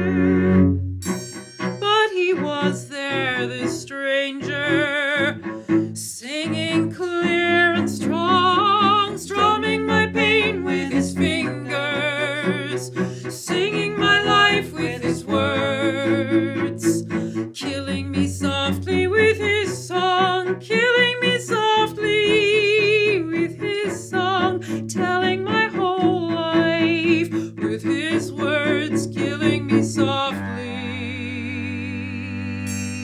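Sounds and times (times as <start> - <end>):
cello low held notes: 0.0 - 33.0.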